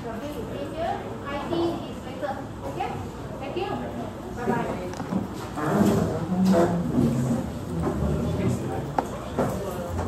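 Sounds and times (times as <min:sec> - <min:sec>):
several people talking: 0:00.0 - 0:10.0.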